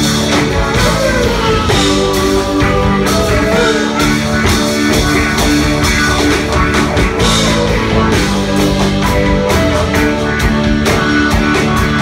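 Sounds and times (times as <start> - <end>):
bass guitar: 0.0 - 12.0
drum kit: 0.0 - 12.0
electric guitar: 0.0 - 12.0
keyboard: 0.0 - 12.0.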